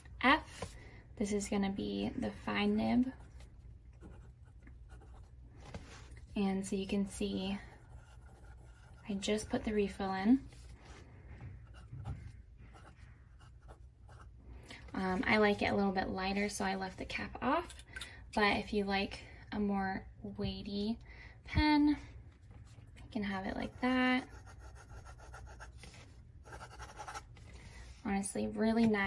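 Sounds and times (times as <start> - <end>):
pen nib scratching paper: 7.8 - 9.2, 23.6 - 25.8, 26.4 - 27.3.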